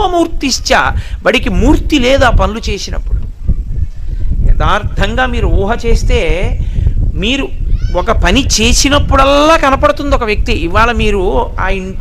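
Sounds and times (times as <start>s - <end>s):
man speaking: 0.0s - 3.2s, 7.2s - 12.0s.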